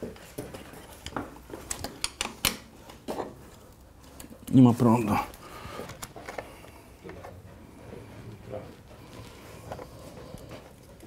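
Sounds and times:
clicks and rustles of hands on wires: 0.0s - 7.5s.

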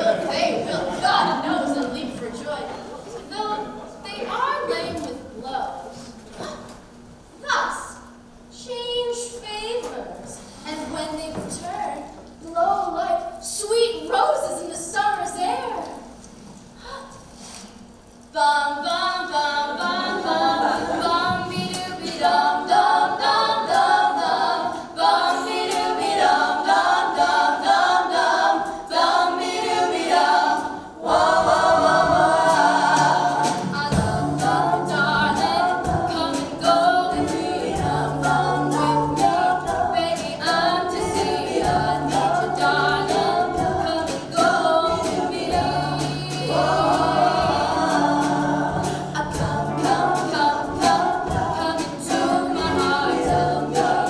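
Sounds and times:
young women singing together: 0.0s - 6.6s, 18.3s - 54.0s
live band: 30.6s - 54.0s.

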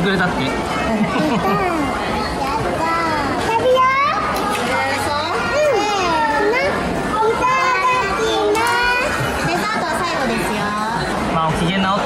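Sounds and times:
young children talking excitedly: 0.6s - 11.0s.

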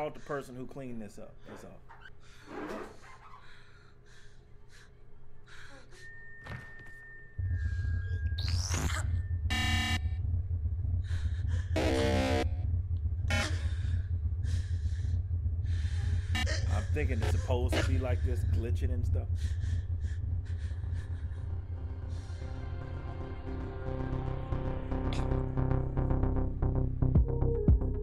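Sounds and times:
loud low drone: 7.4s - 28.0s
buzzy glitch bursts: 9.5s - 10.0s.

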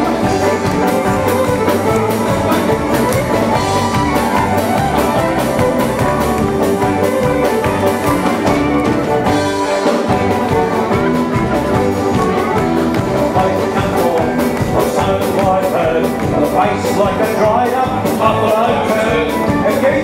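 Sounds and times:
folk band playing: 0.0s - 20.0s.

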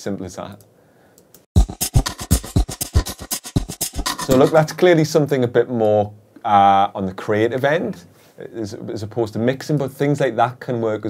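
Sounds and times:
stuttering glitchy drum loop: 1.6s - 4.9s.

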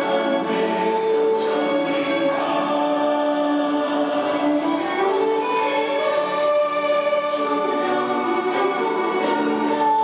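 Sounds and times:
choir singing a slow hymn: 0.0s - 10.0s
orchestral accompaniment: 0.0s - 10.0s.

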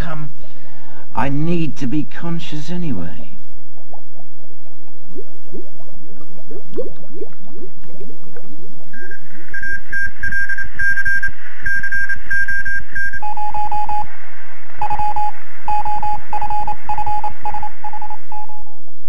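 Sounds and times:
fast low electronic pulse: 3.4s - 19.0s
rapid electronic beeps: 8.9s - 14.1s, 14.8s - 18.8s.

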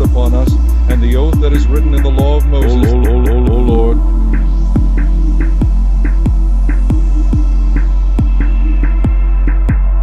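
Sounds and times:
deep bass note: 0.0s - 8.5s
hip-hop beat: 0.0s - 10.0s
kick drums: 4.7s - 10.0s.

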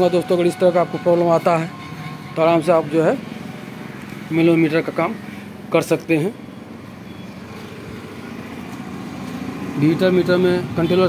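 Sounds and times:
man speaking: 4.3s - 6.4s, 9.8s - 11.0s.

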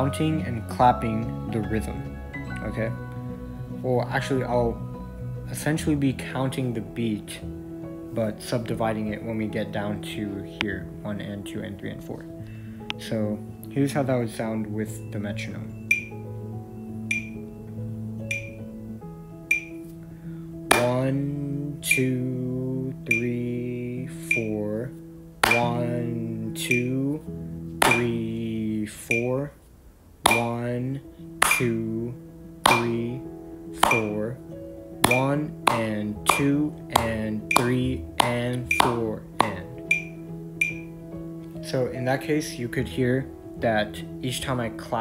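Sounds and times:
metronome clicking: 15.9s - 16.2s, 17.1s - 17.4s, 18.3s - 18.6s, 19.5s - 19.8s, 20.7s - 21.1s, 21.9s - 22.2s, 23.1s - 23.4s, 24.2s - 24.6s, 25.4s - 26.0s, 26.6s - 27.0s, 27.8s - 28.3s, 29.1s - 29.4s, 30.3s - 30.7s, 31.4s - 31.8s, 32.6s - 33.2s, 33.8s - 34.2s, 35.0s - 41.0s
hand claps: 20.7s - 21.1s, 25.4s - 25.9s, 27.8s - 28.2s, 30.3s - 30.6s, 31.4s - 31.8s, 32.7s - 33.1s, 33.8s - 34.2s, 35.0s - 40.8s
person counting: 20.7s - 29.6s, 30.2s - 34.4s, 35.0s - 40.8s.

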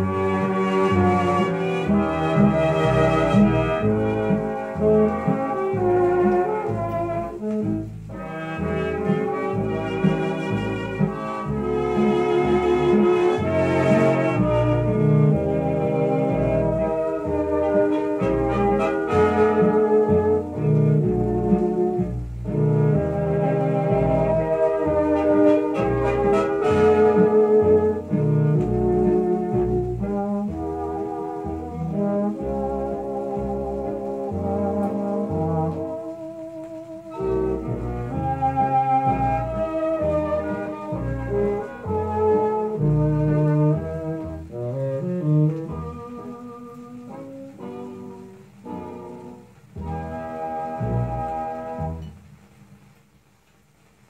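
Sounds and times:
dance band with brass on old record: 0.0s - 52.8s.

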